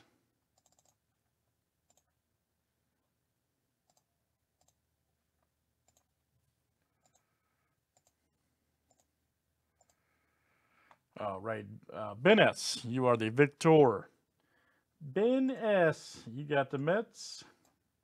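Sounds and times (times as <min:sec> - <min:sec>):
computer mouse clicks: 0:00.0 - 0:01.0, 0:01.9 - 0:02.1, 0:03.8 - 0:04.8, 0:05.8 - 0:06.1, 0:07.0 - 0:07.3, 0:07.9 - 0:08.2, 0:08.9 - 0:09.1, 0:09.8 - 0:10.0.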